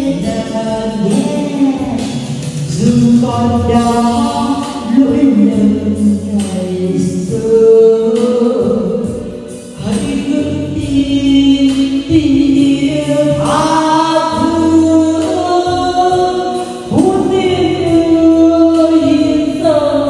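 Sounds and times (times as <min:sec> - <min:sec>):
instrumental accompaniment: 0:00.0 - 0:20.0
woman singing into microphone: 0:00.0 - 0:20.0.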